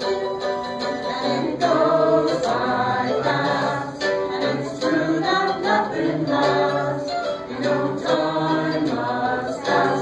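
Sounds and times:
group singing unaccompanied: 0.0s - 10.0s.

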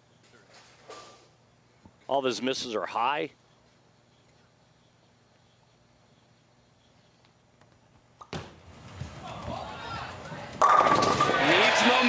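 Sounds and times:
bowling ball rolling: 10.3s - 11.7s
bowling pins crashing: 10.6s - 11.9s
crowd cheering and shouting: 11.3s - 12.0s.

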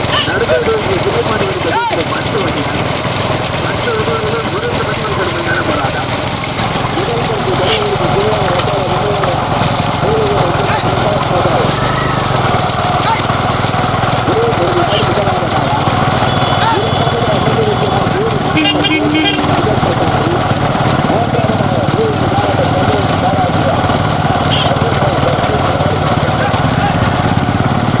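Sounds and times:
people shouting: 0.0s - 6.0s, 6.7s - 20.4s, 24.3s - 27.2s
motor vehicle engine drone: 0.0s - 28.0s.

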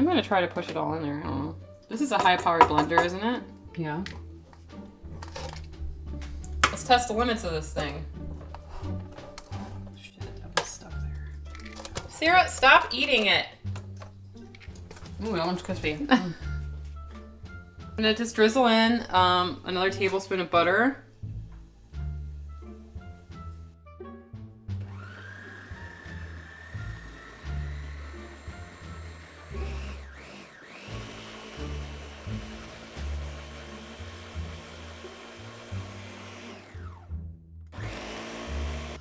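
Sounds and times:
background music: 0.0s - 39.0s
blender whining: 24.7s - 37.1s, 37.7s - 39.0s.

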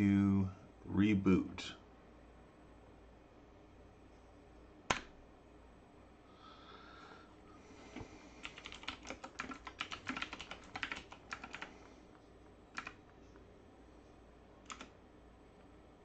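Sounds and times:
computer keyboard typing: 8.4s - 11.8s, 12.7s - 13.0s, 14.6s - 15.0s.

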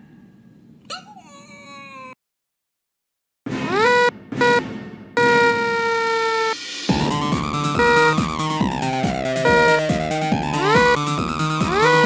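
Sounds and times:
cartoon squealing voice: 0.9s - 2.2s, 5.2s - 6.6s, 9.4s - 9.9s, 10.5s - 11.0s, 11.6s - 12.0s
electronic dance music: 3.5s - 12.0s
chopped cartoon screams: 5.2s - 6.6s.

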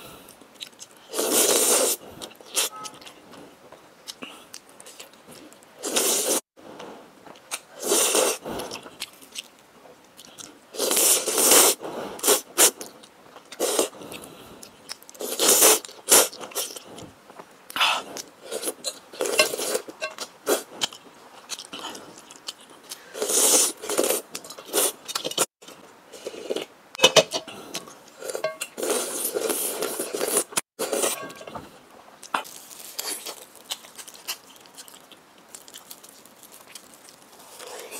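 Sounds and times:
noodles slurped and chewed: 0.6s - 2.7s.

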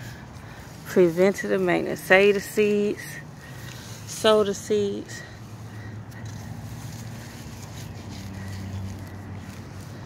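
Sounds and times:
low engine-like hum: 0.0s - 10.0s.

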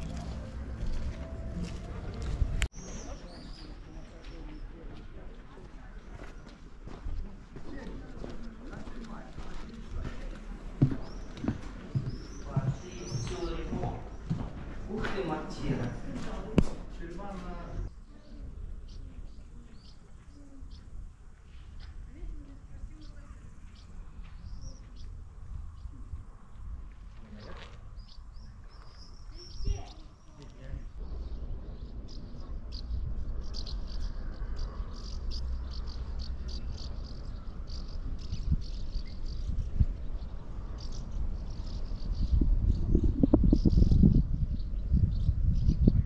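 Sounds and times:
small birds chirping: 2.7s - 46.0s
wind rumble on microphone: 18.3s - 46.0s.

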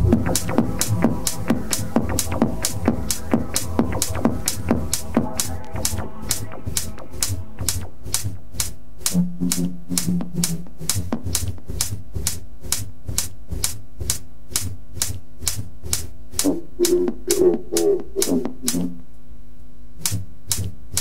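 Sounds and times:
techno kick drum: 0.0s - 19.0s, 20.0s - 21.0s
clicking hi-hats: 0.0s - 19.2s, 20.0s - 21.0s.

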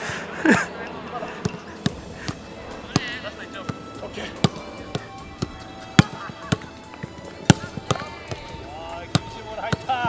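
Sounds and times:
football kicks on grass: 1.4s - 3.2s, 4.2s - 5.1s, 7.5s - 8.5s.

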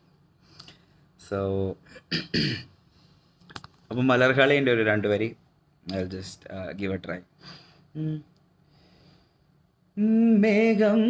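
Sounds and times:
man clearing his throat: 1.9s - 2.7s.

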